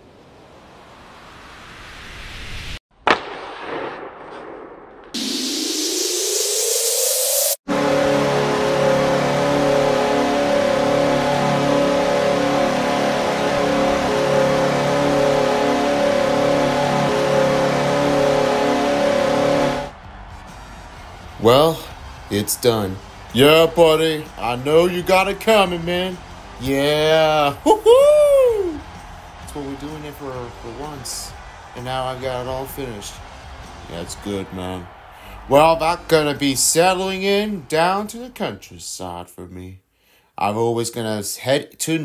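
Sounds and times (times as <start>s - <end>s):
rising wind-up noise: 0.0s - 2.8s, 5.1s - 7.6s
rising whoosh: 0.1s - 2.8s, 3.6s - 7.6s
loud horn-like chord: 7.7s - 21.7s.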